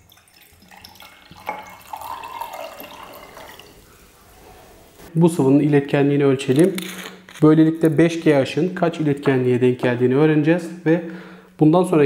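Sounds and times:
water pouring into glass jar: 0.0s - 3.9s.

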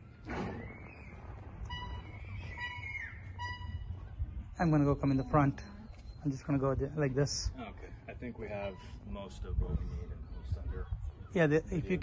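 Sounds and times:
high bird chirps: 1.8s - 3.9s.

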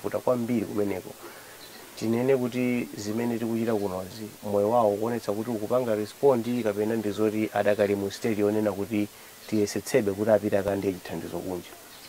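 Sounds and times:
man speaking: 0.0s - 1.4s, 2.0s - 11.8s.

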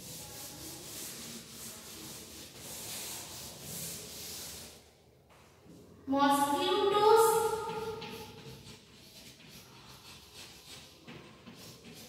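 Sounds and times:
chalkboard duster scrubbing: 0.0s - 4.8s, 6.7s - 12.0s.

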